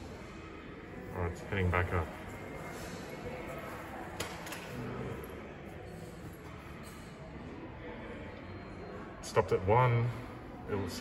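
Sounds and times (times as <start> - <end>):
faint distant voices: 0.0 - 11.0
large hall ambience: 0.0 - 11.0.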